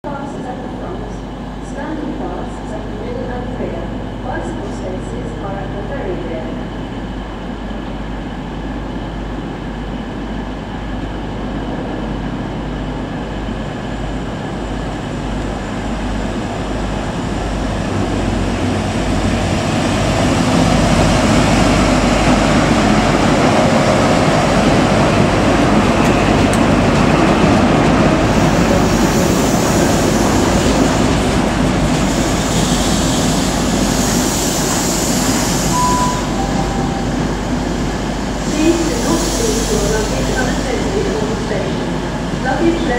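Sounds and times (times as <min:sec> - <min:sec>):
diesel train engine passing: 0:00.1 - 0:42.9
train wheels rushing on rails: 0:04.0 - 0:42.9.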